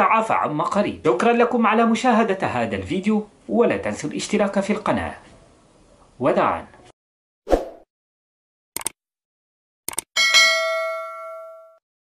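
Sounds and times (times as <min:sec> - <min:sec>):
notification bell ding: 0:10.2 - 0:11.8.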